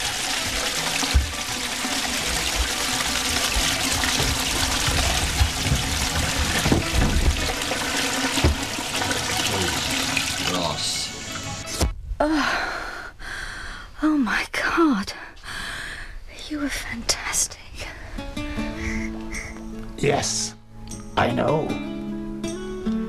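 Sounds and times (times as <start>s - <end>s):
toilet flushing: 0.0s - 11.8s
woman gasping: 12.2s - 13.9s, 18.5s - 19.7s.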